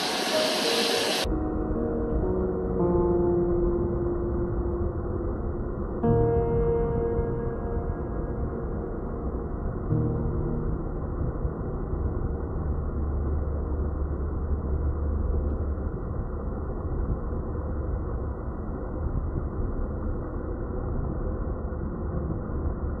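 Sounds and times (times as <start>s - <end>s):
waves washing on a beach: 0.0s - 1.3s
deep rumble: 0.0s - 23.0s.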